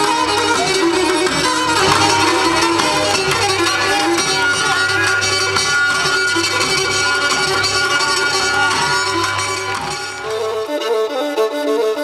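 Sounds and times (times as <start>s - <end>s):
folk dance music with bowed lyra: 0.0s - 12.0s.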